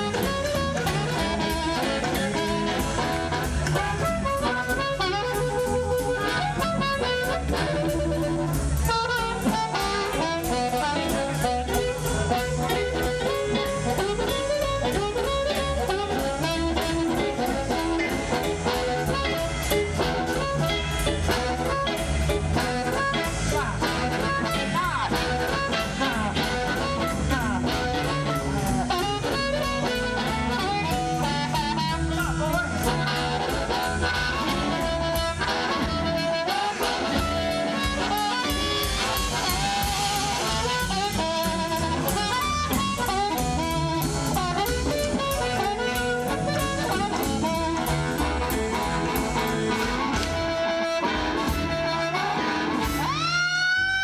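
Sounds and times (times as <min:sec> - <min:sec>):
amplified blues harmonica: 0:00.0 - 0:54.0
drum kit: 0:00.0 - 0:54.0
electric guitar: 0:00.0 - 0:54.0.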